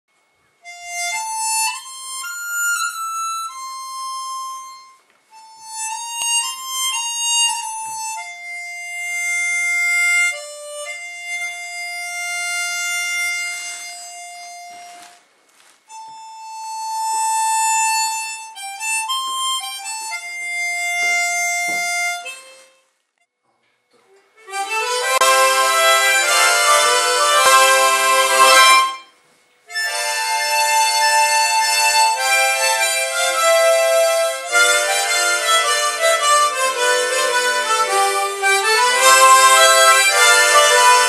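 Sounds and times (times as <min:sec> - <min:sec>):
solo harmonica melody: 0:00.6 - 0:23.0, 0:24.3 - 0:41.0.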